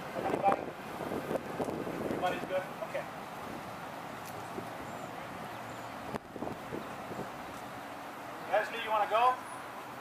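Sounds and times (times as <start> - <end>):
city street background noise: 0.0 - 10.0.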